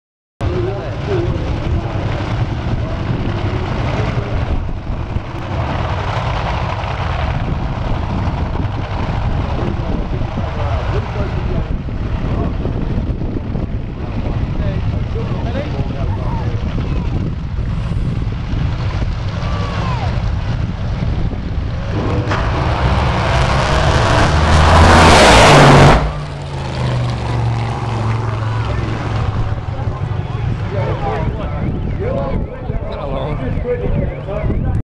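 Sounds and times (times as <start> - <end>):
drag racing car engine: 0.4 - 32.0
low rumble: 0.4 - 34.8.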